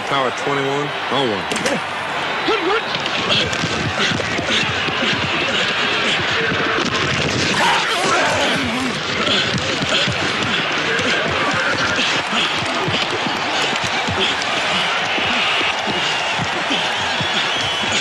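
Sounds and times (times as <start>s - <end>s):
players shouting: 0.0s - 18.0s
stadium crowd roar: 0.0s - 18.0s.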